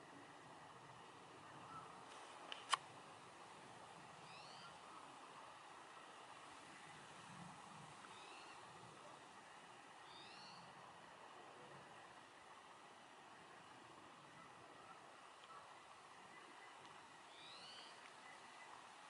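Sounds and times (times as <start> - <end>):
short rising bird chirps: 4.3 - 4.8, 10.0 - 10.6, 17.3 - 18.0.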